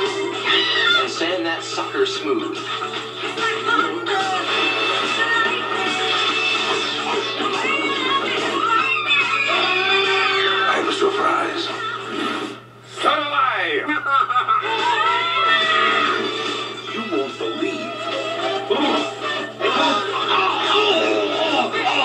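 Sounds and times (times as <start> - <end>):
comic music: 2.6 - 12.7, 14.6 - 22.0.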